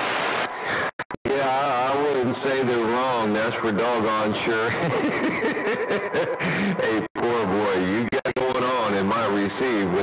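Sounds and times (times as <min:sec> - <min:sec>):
voice over cb radio: 0:06.1 - 0:10.0.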